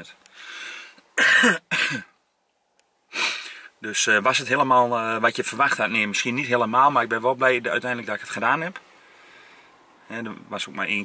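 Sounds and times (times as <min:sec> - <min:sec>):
man coughing: 0:01.2 - 0:02.2.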